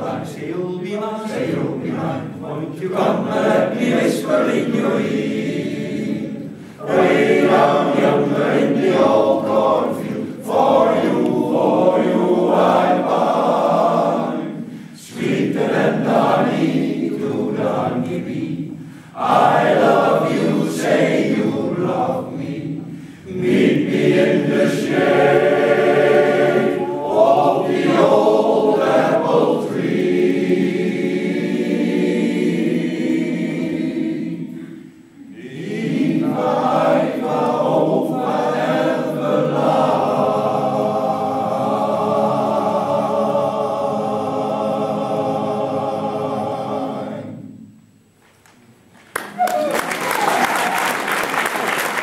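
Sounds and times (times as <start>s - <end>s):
male choir singing in parts: 0.0s - 47.6s.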